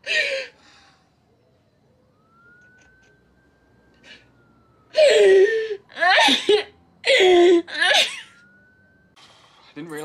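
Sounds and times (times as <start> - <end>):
woman sobbing: 0.0 - 0.6, 5.0 - 8.4.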